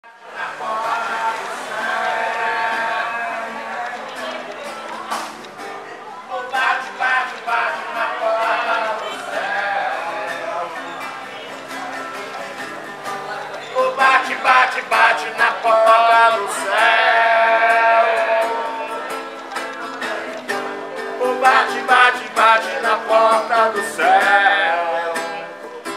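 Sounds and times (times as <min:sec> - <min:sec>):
man singing: 0:00.0 - 0:04.1, 0:06.3 - 0:11.0, 0:13.7 - 0:19.1, 0:21.2 - 0:25.5
strummed acoustic guitar: 0:00.0 - 0:25.9.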